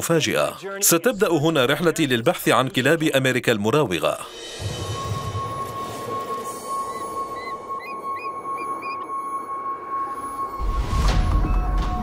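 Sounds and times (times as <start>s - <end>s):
eagle chirping calls: 6.8s - 9.1s.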